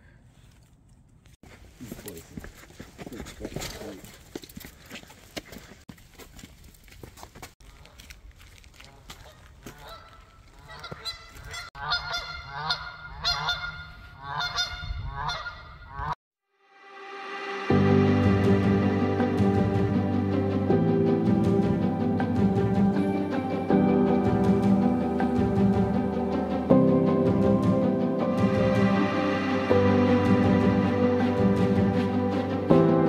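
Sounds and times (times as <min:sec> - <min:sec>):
geese honking: 0:09.0 - 0:16.2.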